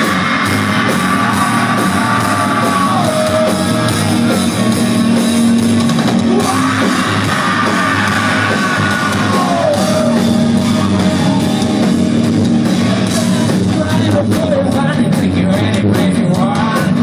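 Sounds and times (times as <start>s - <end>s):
yelling from stage and crowd: 0.0s - 13.8s
live rock band playing: 0.0s - 17.0s.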